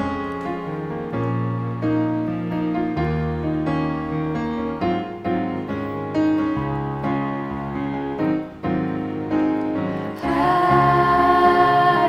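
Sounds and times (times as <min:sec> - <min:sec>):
piano-led instrumental music: 0:00.0 - 0:12.0.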